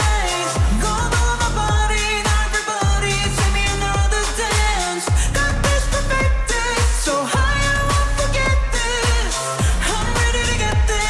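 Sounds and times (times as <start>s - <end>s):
dance beat bass kicks: 0.0s - 11.0s
slowed reverb pop song: 0.0s - 11.0s
woman singing: 0.0s - 11.0s.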